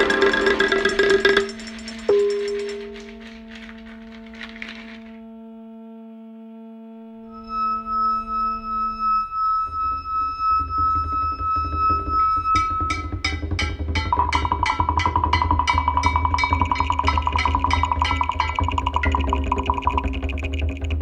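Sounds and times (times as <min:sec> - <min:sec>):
struck ringing tone: 0:00.0 - 0:04.3, 0:07.3 - 0:20.6
electronic music: 0:00.0 - 0:04.9, 0:07.3 - 0:21.0
high held tone: 0:07.3 - 0:20.6
low pulsing beat: 0:10.8 - 0:21.0.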